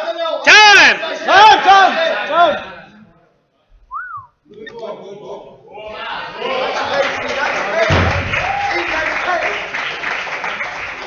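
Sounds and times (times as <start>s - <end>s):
short whistle: 3.9s - 4.4s
spectators whooping: 8.3s - 9.1s.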